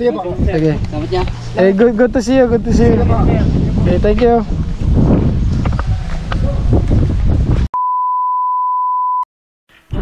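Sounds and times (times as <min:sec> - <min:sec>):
wind rumbling on microphone: 0:00.0 - 0:07.7
high electronic beep: 0:07.8 - 0:09.3.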